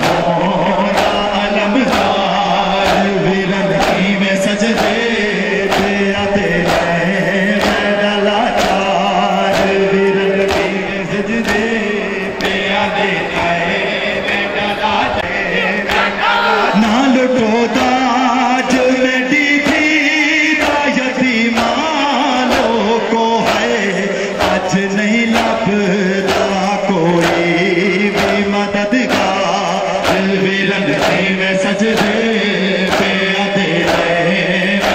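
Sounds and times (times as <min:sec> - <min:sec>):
chest-beating in unison: 0:00.0 - 0:34.9
men chanting a lament: 0:00.0 - 0:34.9
hands slapping chests: 0:05.7 - 0:06.0, 0:06.6 - 0:06.9, 0:07.6 - 0:07.9, 0:08.6 - 0:08.8, 0:26.3 - 0:26.6, 0:27.2 - 0:28.5.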